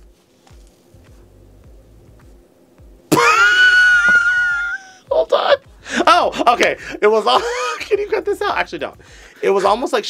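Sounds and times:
person squealing high-pitched: 3.1s - 4.9s.

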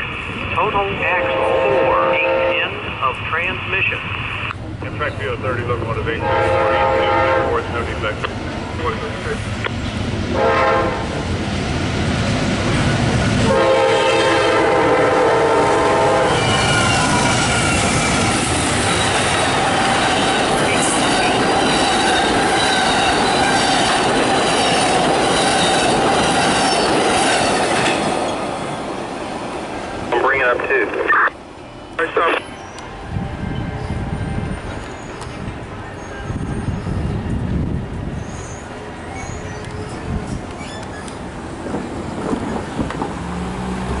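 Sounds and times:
train wheels rushing on rail: 0.0s - 44.0s
wind noise on microphone: 33.0s - 38.5s, 39.7s - 43.8s
wheel squeal: 34.7s - 37.2s, 38.2s - 41.2s.

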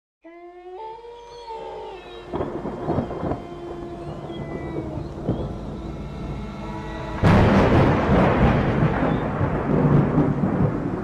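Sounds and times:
held pitched tones: 0.2s - 9.1s
steady rain: 2.2s - 11.0s
thunder rumbling: 2.2s - 11.0s.

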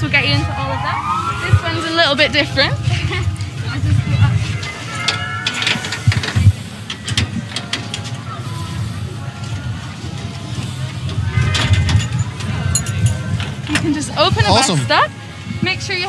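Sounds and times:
low hum: 0.0s - 13.2s.

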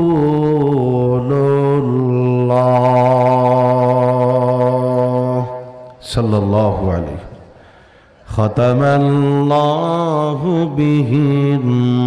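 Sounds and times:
man chanting: 0.0s - 7.6s, 8.2s - 12.0s.

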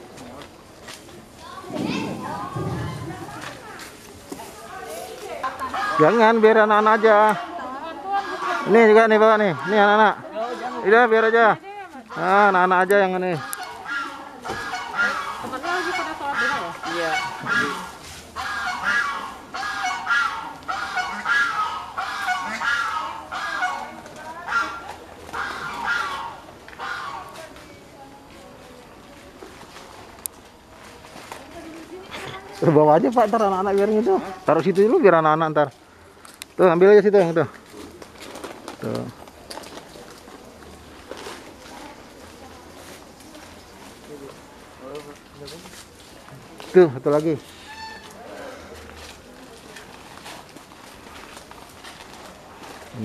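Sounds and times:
background chatter: 0.0s - 53.0s
bird honking: 8.1s - 10.8s, 13.4s - 27.4s, 47.5s - 48.2s.

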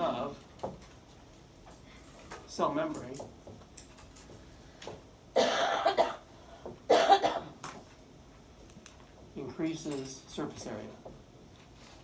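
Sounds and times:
person coughing: 5.4s - 6.3s, 6.9s - 7.6s.

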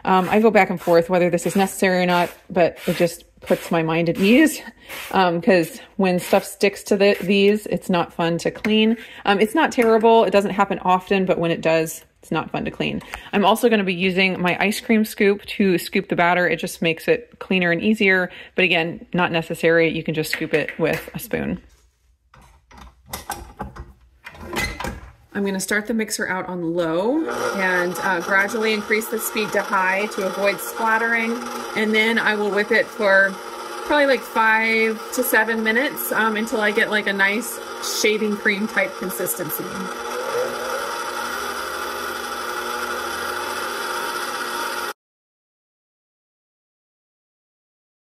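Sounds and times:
stand mixer motor whirring: 27.2s - 45.0s.

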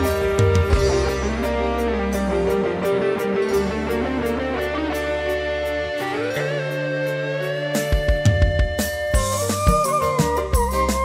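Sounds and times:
guitar-led band music: 0.0s - 11.0s.

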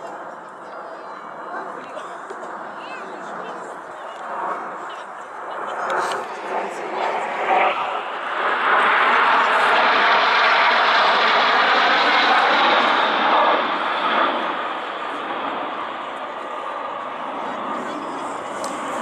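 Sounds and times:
jet planes flying past: 0.0s - 19.0s.

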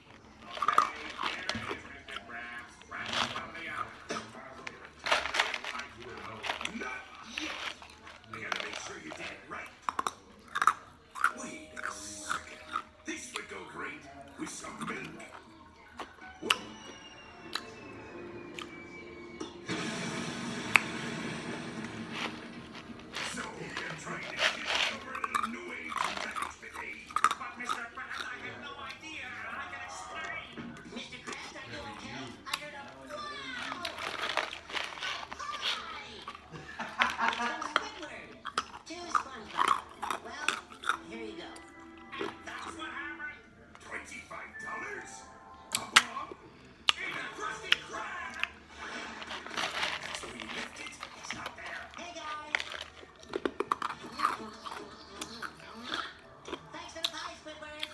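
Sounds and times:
television music: 0.0s - 57.9s
television voices: 0.0s - 57.9s.

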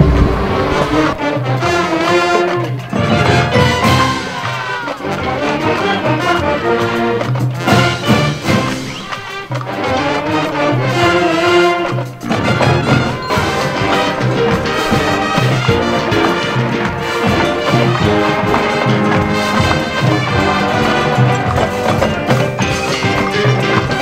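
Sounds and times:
marching band playing: 0.0s - 24.0s.

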